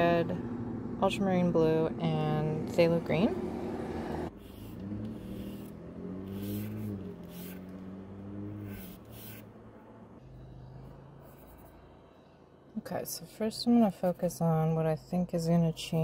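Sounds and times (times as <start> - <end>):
passing vehicle engine hum: 0.0 - 14.2
paintbrush scratching on panel: 4.3 - 7.8, 8.5 - 9.5.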